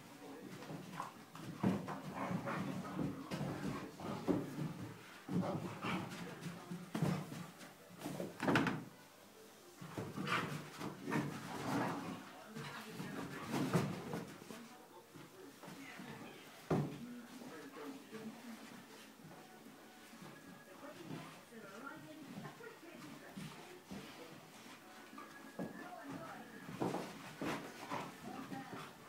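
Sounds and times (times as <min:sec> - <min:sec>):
paws scuffling on carpet: 0:00.0 - 0:08.4, 0:09.8 - 0:29.0.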